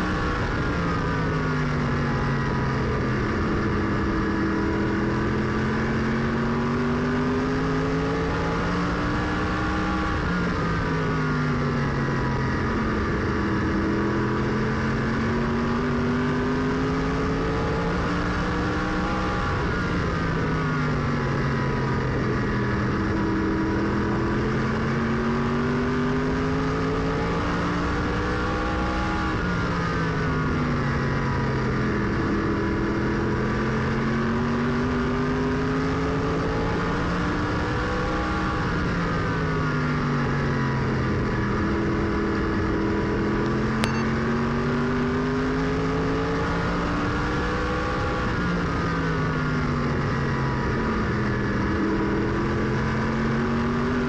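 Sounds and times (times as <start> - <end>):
brief click: 43.8 - 44.2.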